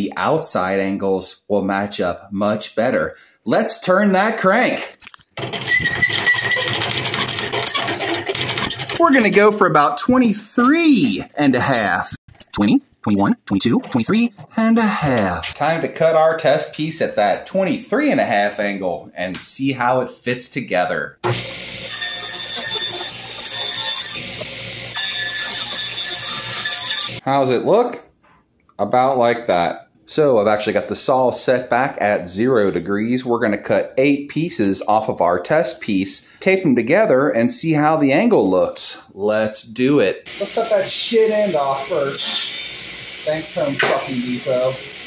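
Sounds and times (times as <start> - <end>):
handwheel gearing rattle: 5.4 - 9.4
table saw cutting wood: 21.2 - 27.2, 40.3 - 45.0.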